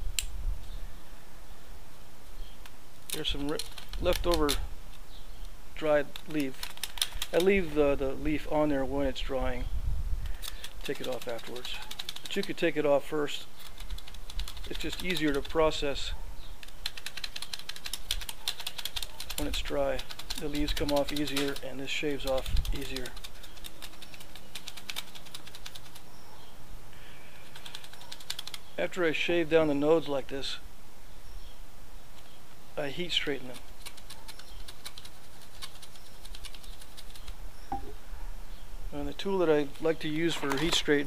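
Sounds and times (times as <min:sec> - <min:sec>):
dry leaf crackling off reed: 0:02.3 - 0:08.4, 0:10.3 - 0:26.2, 0:27.0 - 0:29.0, 0:32.1 - 0:37.4.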